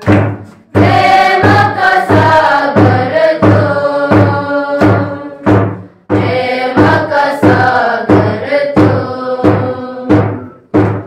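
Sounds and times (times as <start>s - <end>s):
hand-held drum beating: 0.0s - 11.0s
congregation singing a hymn: 0.2s - 10.7s.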